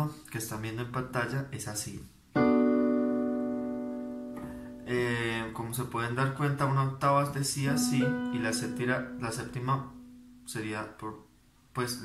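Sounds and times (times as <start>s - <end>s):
electronic keyboard chord: 2.4s - 5.2s, 7.7s - 10.5s.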